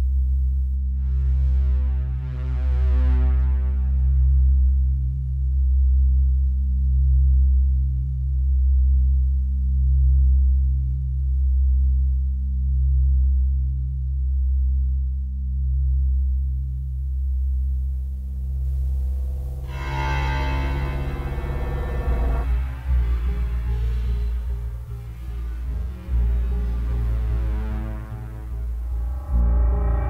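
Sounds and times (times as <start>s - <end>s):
deep synthesized drone: 0.0s - 30.0s.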